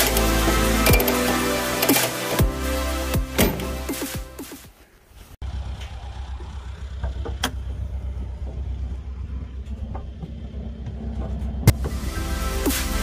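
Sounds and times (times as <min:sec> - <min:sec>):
sharp clicks: 0:00.0 - 0:02.4
engine running low rumble: 0:05.4 - 0:12.6.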